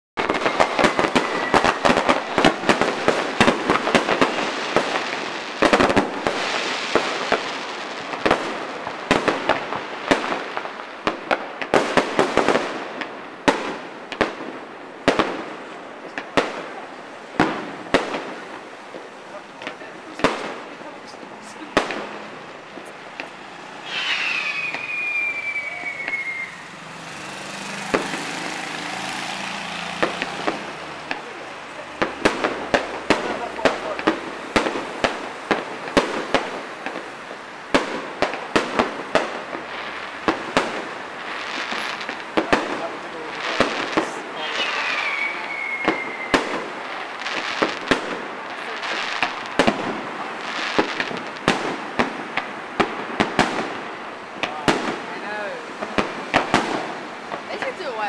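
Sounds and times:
distant fireworks bangs and crackles: 0:00.2 - 0:58.0.

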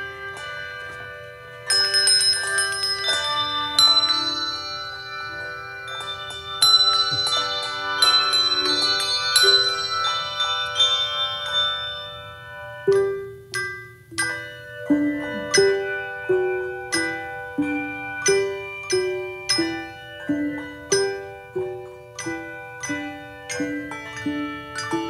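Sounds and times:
handbell choir melody: 0:00.0 - 0:25.0.

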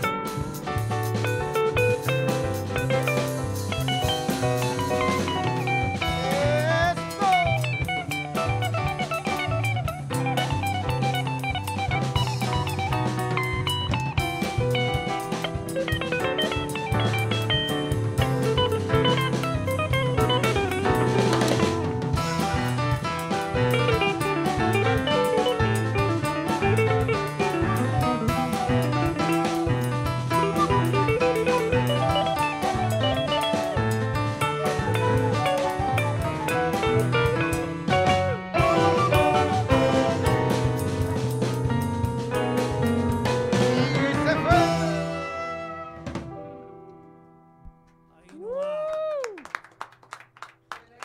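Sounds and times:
band playing drums and guitar: 0:00.0 - 0:46.9.

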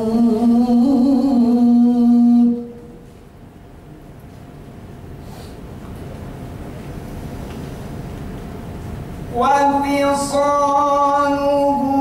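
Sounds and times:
man chanting into a microphone: 0:09.3 - 0:12.0.

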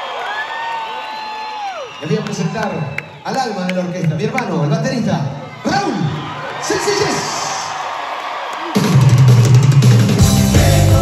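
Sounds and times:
crowd noise: 0:00.0 - 0:11.0
rock drum kit playing: 0:08.7 - 0:11.0.

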